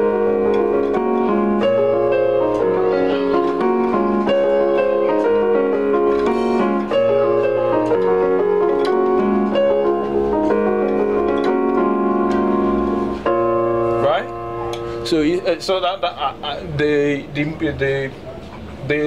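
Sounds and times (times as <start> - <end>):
electronic keyboard playing chords: 0.0 - 19.0.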